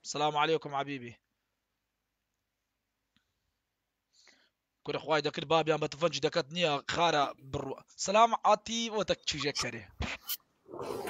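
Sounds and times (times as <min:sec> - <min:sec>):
speech: 0:00.0 - 0:01.2, 0:04.8 - 0:10.0.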